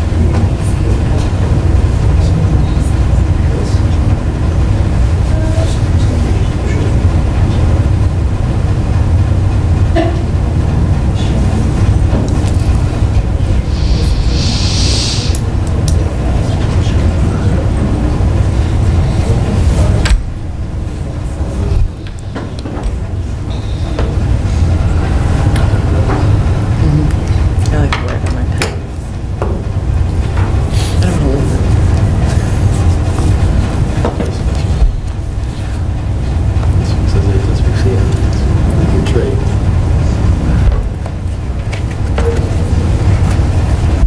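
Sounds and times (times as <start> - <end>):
steady low rumble: 0.0 - 44.0
brief hiss: 13.4 - 15.7.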